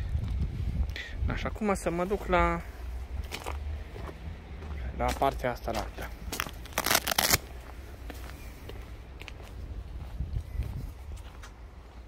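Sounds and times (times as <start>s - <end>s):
footsteps crunching through dry weeds: 2.0s - 12.0s.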